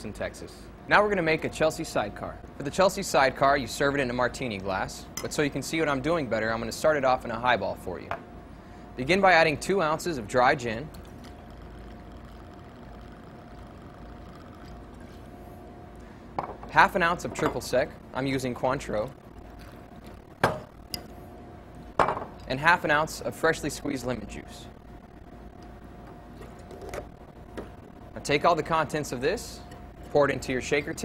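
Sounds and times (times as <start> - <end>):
faint steady hum: 0.0 - 31.0
liquid pouring into a glass: 10.9 - 15.3.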